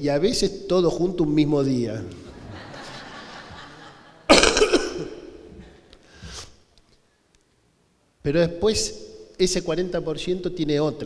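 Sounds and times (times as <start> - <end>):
man coughing: 4.3 - 5.8.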